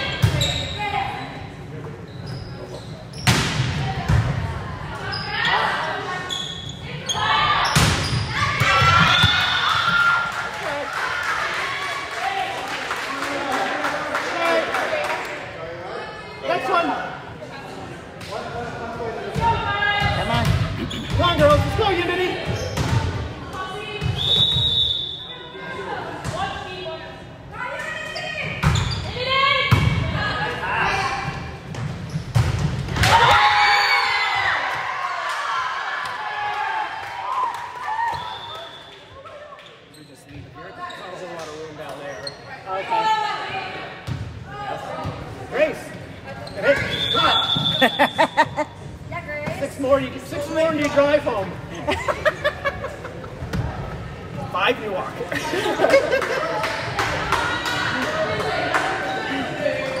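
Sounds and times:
crowd cheering and shouting: 7.2s - 12.5s, 33.0s - 38.3s
whistle blast: 24.2s - 25.3s, 46.8s - 48.2s.

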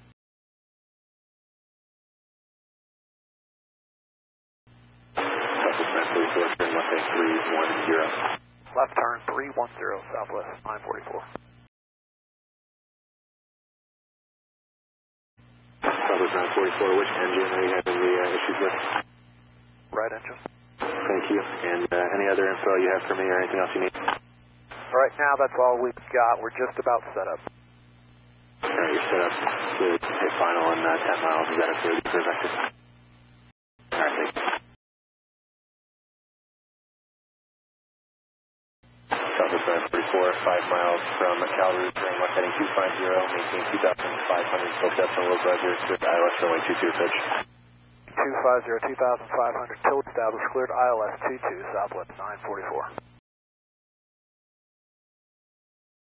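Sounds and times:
faint radio hiss: 4.8s - 11.7s, 15.4s - 34.7s, 38.9s - 53.2s
controller voice over radio: 48.2s - 53.0s.

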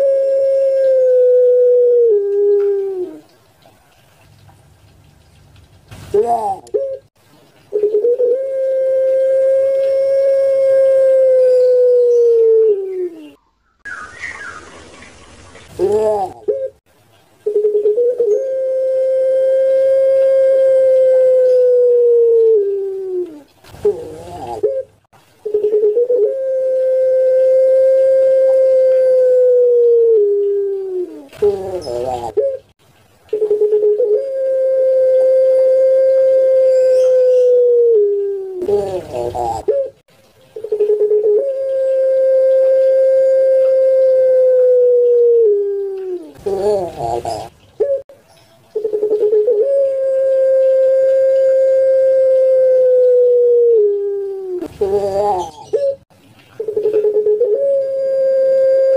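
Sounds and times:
dove cooing: 0.0s - 3.3s, 6.1s - 7.1s, 7.7s - 13.4s, 15.6s - 16.8s, 17.4s - 32.7s, 33.3s - 48.0s, 48.8s - 58.9s.

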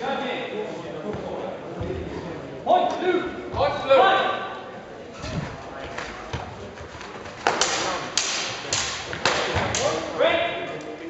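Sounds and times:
fencing weapons striking: 7.4s - 10.2s.

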